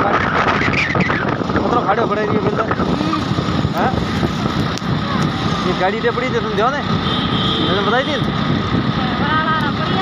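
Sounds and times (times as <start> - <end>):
motorcycle engine: 0.0 - 10.0
road noise: 0.0 - 10.0
wind rushing over microphone: 0.0 - 10.0.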